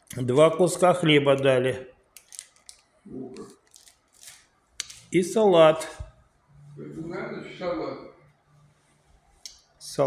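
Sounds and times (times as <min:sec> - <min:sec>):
plastic bread wrapping crinkling: 0:02.2 - 0:02.8, 0:03.4 - 0:05.1.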